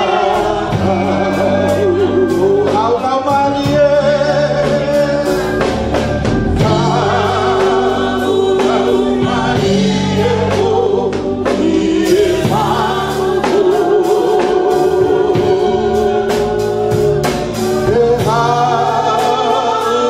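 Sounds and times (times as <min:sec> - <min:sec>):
women singing gospel song: 0:00.0 - 0:20.0.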